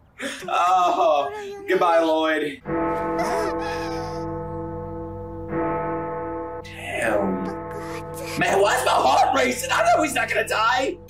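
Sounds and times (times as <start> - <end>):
large bell tolling: 2.6 - 11.0.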